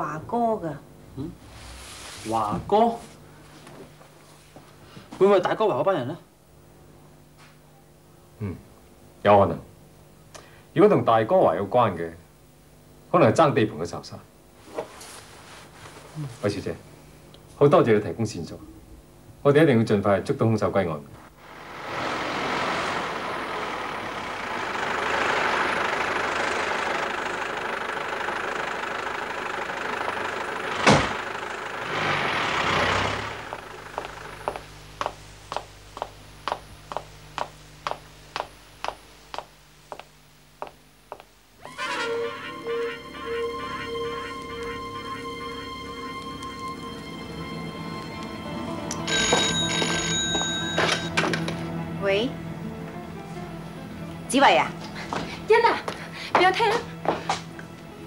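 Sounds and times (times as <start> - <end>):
car pulling away: 21.4 - 34.7, 41.6 - 55.4
car engine running: 21.4 - 36.1
street noise: 21.4 - 58.0
car door slamming: 30.8 - 31.2
hard-soled footsteps: 33.5 - 41.8, 49.0 - 51.6, 54.8 - 57.6
telephone bell ringing: 41.7 - 51.2.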